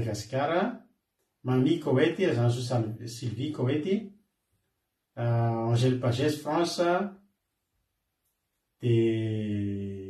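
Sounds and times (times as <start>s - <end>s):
man holding a low drawn-out vowel: 8.8s - 10.0s.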